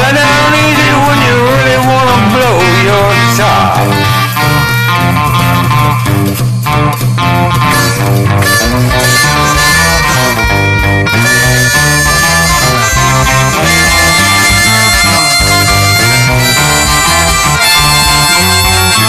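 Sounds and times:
harmonica solo: 0.0s - 6.2s, 7.2s - 19.0s
electric guitar: 0.0s - 19.0s
repeating bass line: 0.0s - 19.0s.

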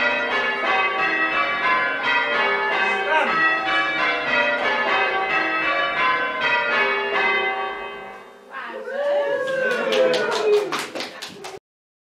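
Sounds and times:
church bells ringing: 0.0s - 8.6s.

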